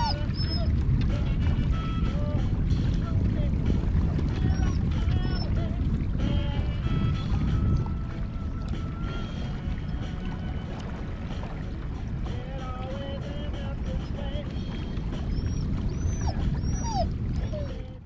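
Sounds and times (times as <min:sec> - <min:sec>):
thin whining chirping calls: 0:00.0 - 0:00.7, 0:15.2 - 0:17.8
wind rumble on microphone: 0:00.0 - 0:18.0.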